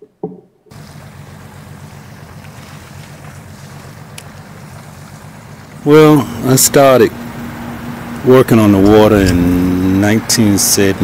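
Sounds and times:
hiss of wind and water: 0.7s - 11.0s
boat motor running: 6.3s - 10.2s.

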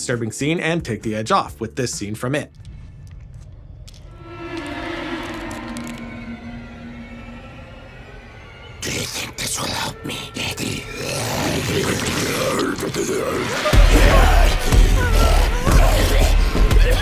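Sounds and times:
harsh noise stinger and hits: 4.1s - 8.7s
held string-like tones: 4.1s - 9.0s.

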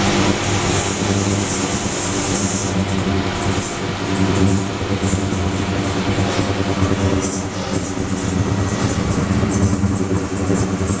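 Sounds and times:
ultrasonic cleaner hum and whine: 0.0s - 11.0s.

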